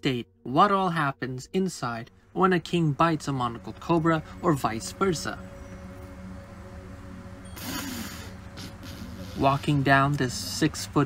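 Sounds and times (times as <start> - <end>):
quiet background music: 0.0 - 11.0
snake hissing exhale: 7.6 - 9.8.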